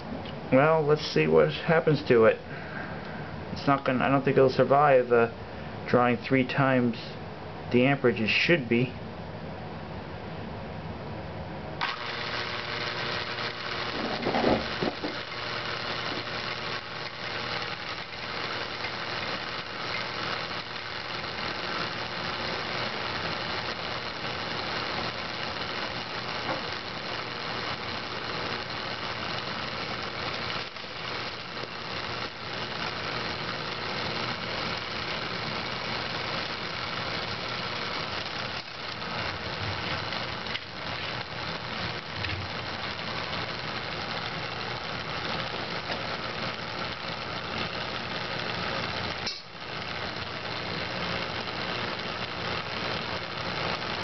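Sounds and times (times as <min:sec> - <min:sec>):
fan motor humming: 0:00.0 - 0:54.0.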